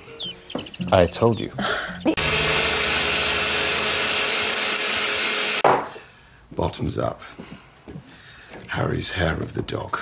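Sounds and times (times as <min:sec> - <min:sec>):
blender running: 0:02.2 - 0:05.7.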